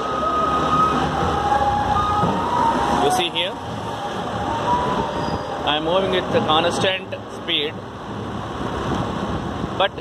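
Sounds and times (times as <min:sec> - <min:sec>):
road and wind noise: 0:00.0 - 0:10.0.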